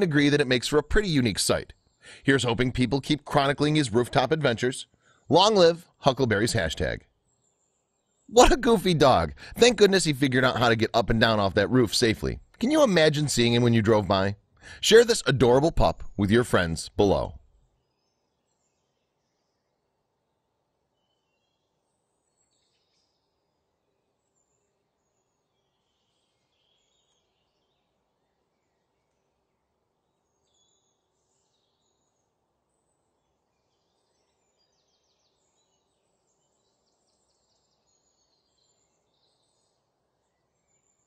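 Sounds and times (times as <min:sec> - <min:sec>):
faint steady hiss: 0:00.0 - 0:41.0.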